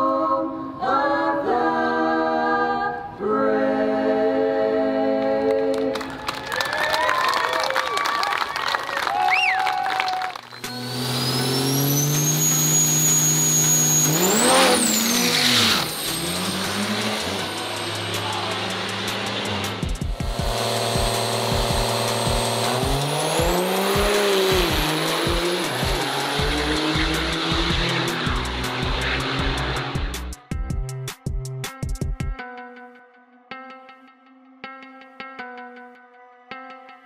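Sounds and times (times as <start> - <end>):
diesel trucks racing: 8.3 - 30.4
high turbo whistle: 9.2 - 30.0
engine revving: 10.4 - 30.6
background music: 15.5 - 37.0.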